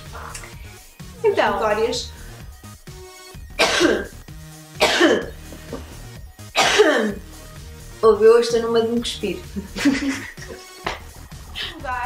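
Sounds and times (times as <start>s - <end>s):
background music: 0.0s - 12.0s
woman coughing: 3.6s - 4.2s, 4.8s - 5.4s, 6.6s - 7.2s.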